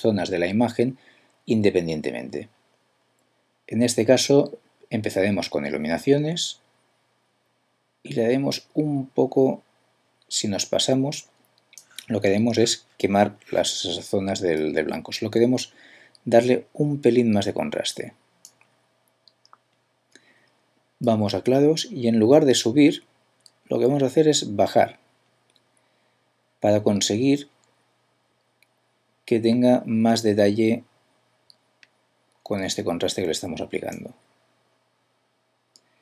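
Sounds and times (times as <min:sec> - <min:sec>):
person speaking: 0:00.0 - 0:02.6, 0:03.7 - 0:06.7, 0:08.0 - 0:09.7, 0:10.3 - 0:18.6, 0:21.0 - 0:25.0, 0:26.6 - 0:27.6, 0:29.3 - 0:30.9, 0:32.4 - 0:34.2.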